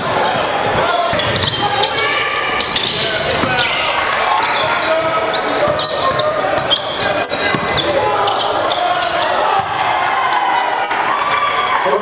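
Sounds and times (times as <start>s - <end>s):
basketball bouncing on court: 0.0s - 2.0s, 2.6s - 9.8s
crowd and players' voices: 0.0s - 12.0s.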